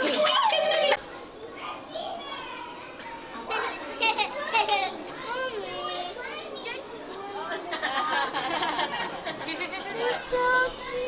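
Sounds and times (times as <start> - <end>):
children's voices chattering: 0.0 - 11.0.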